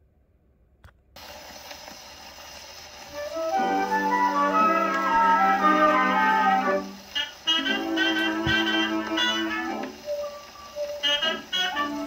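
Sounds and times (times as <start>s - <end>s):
record surface hiss and crackles: 0.0s - 12.0s.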